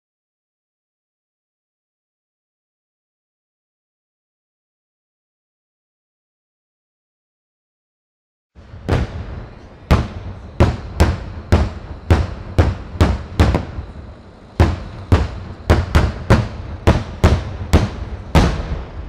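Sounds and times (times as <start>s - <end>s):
fireworks bursting with sharp bangs: 8.6s - 19.0s.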